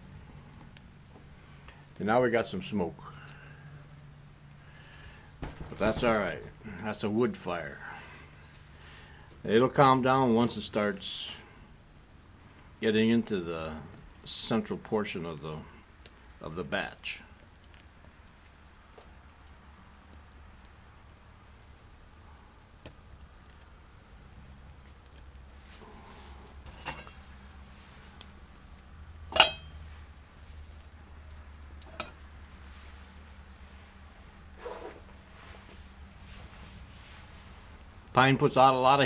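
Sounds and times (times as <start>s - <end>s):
fire popping and clicking: 0.0s - 39.0s
twigs burning in a stove: 0.0s - 39.0s.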